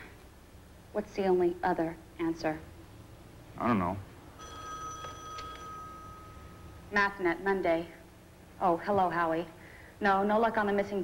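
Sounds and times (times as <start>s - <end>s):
desk telephone ringing: 4.4s - 6.9s.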